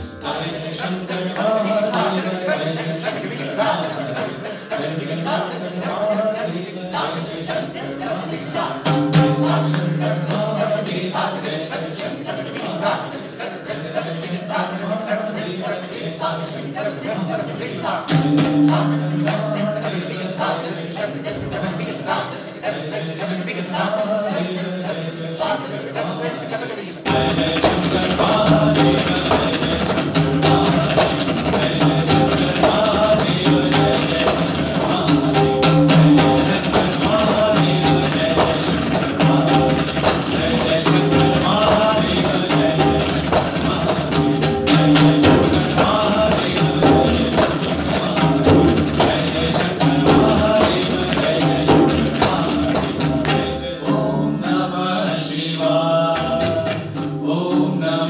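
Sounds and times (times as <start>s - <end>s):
tabla ensemble playing: 0.0s - 24.9s, 27.0s - 58.0s
sung melody: 18.1s - 20.2s, 34.9s - 38.6s.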